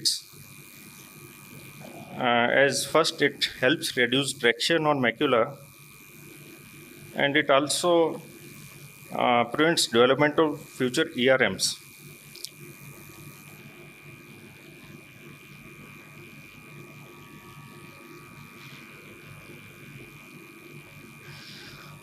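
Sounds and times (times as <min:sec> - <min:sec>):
faint buzz: 0:00.0 - 0:22.0.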